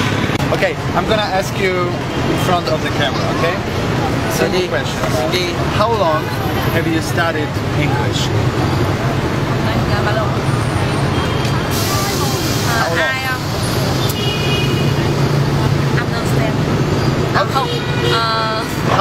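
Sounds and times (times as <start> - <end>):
street traffic hum: 0.0 - 19.0
people talking: 0.5 - 8.4, 9.5 - 14.0, 15.0 - 16.8, 17.4 - 19.0.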